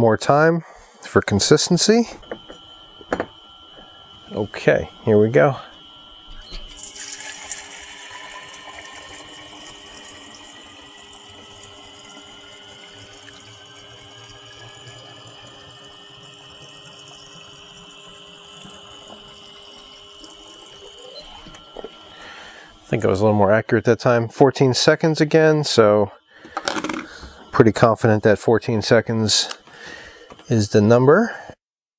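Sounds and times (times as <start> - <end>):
pump whine: 0.0 - 31.5
water pouring into glass jug: 6.7 - 22.4.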